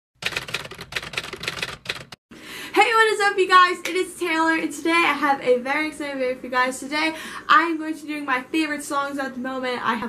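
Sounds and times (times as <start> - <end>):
typewriter keys clattering: 0.2 - 2.2.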